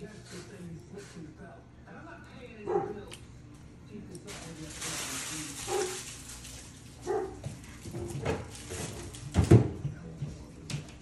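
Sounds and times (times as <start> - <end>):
dog barking: 2.7 - 3.0, 5.7 - 6.0, 7.0 - 7.4.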